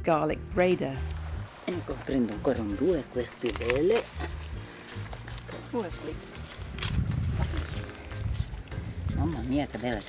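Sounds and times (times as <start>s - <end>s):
dry stalks crackling and rustling: 0.8s - 10.0s
wind rumbling on microphone: 6.5s - 9.8s.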